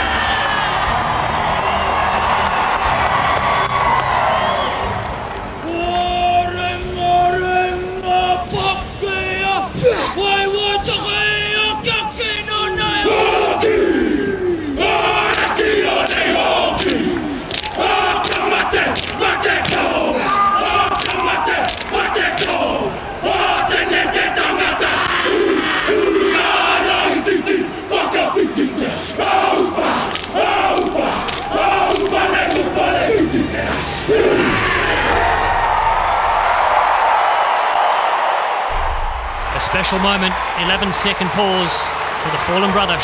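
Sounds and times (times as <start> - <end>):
large stadium crowd noise: 0.0 - 43.0
men chanting and shouting in unison: 5.6 - 35.6
sharp slaps: 15.2 - 20.0, 20.7 - 22.7, 30.1 - 32.8.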